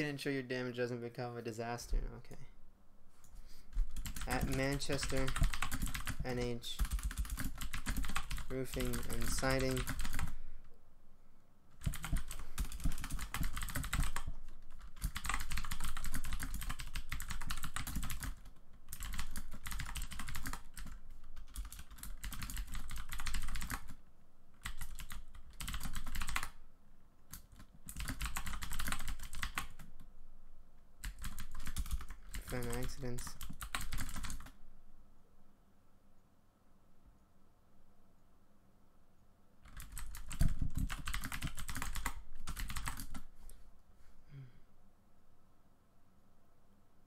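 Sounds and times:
typing on computer keyboard: 3.8s - 10.4s, 11.8s - 24.0s, 24.6s - 26.6s, 27.3s - 30.0s, 31.0s - 34.6s, 39.6s - 43.3s.

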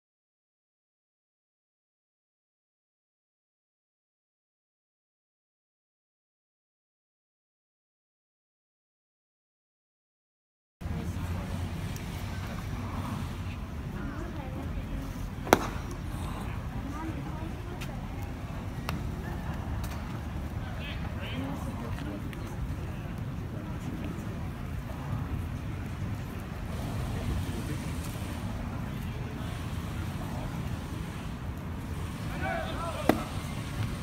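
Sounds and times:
low crowd murmur: 10.8s - 34.0s
baseball smacking into mitt: 15.4s - 16.0s, 33.0s - 33.3s.

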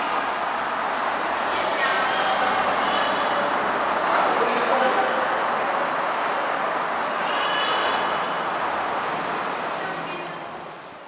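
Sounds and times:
motorway traffic rushing: 0.0s - 11.0s.

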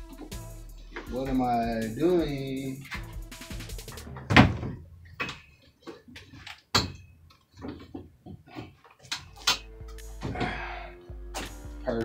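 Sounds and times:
keyboard stand knocks and clunks: 4.1s - 5.4s.

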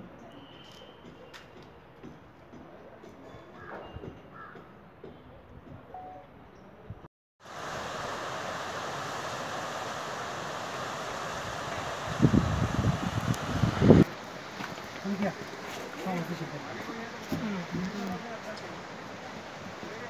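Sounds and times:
wind buffeting microphone: 10.6s - 14.1s.

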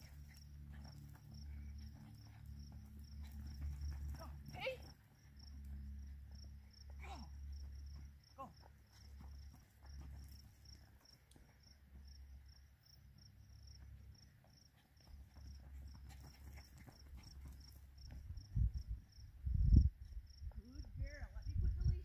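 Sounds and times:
cricket chirping: 0.0s - 22.0s.

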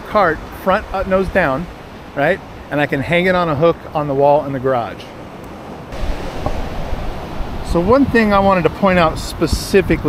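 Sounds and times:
surf: 0.0s - 10.0s
wind noise on microphone: 5.9s - 10.0s.

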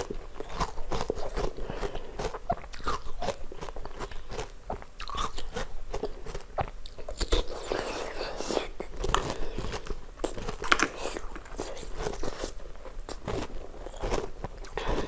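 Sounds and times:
ice being bitten and crunched: 0.0s - 15.0s.

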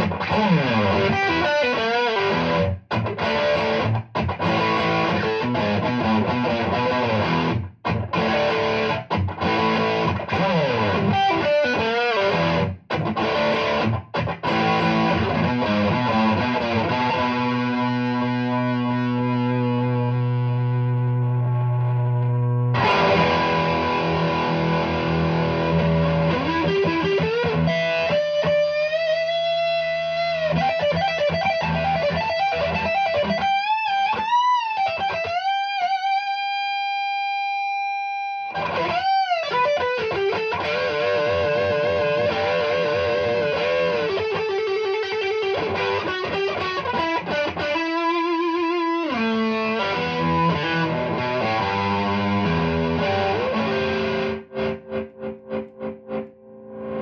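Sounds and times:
distorted electric guitar: 0.0s - 57.0s.

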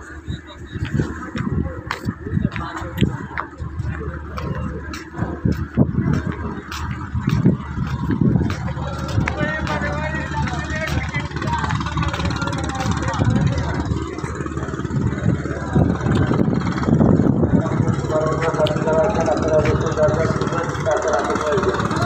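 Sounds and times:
boat engine running: 0.0s - 22.0s
voices talking: 0.0s - 22.0s.

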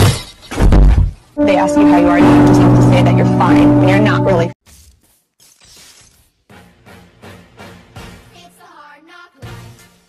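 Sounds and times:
music with low struck notes: 1.4s - 4.6s.

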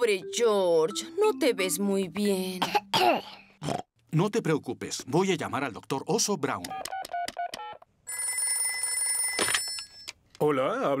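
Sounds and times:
telephone bell ringing: 8.1s - 10.1s.

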